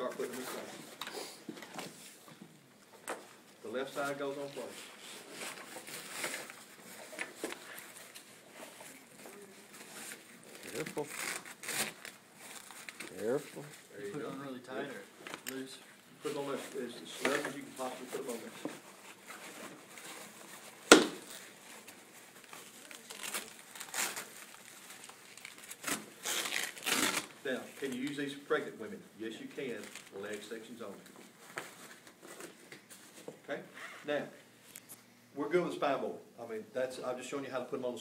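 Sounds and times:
fabric rustling and crinkling: 0:04.0 - 0:14.2, 0:16.2 - 0:28.0.

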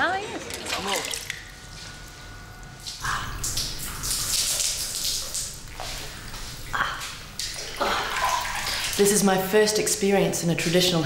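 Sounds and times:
water pouring into a basin: 0:07.4 - 0:09.5.

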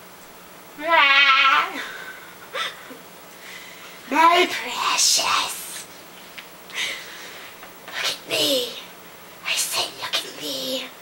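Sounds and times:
wavering bleat-like call: 0:00.8 - 0:01.9.

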